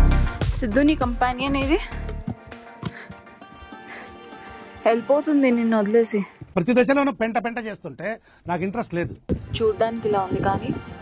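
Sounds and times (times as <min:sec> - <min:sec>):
soft background music: 0:00.4 - 0:06.5, 0:09.3 - 0:11.0.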